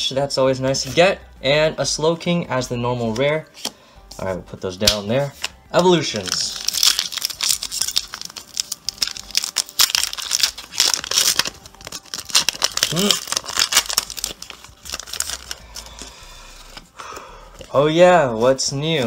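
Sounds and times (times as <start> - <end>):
foil wrapper crinkling and tearing: 6.2 - 16.8.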